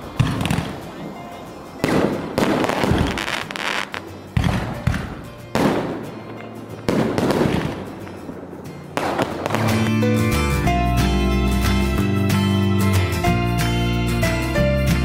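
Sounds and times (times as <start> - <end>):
fireworks banging and crackling: 0.0 - 10.1
music: 0.0 - 15.0.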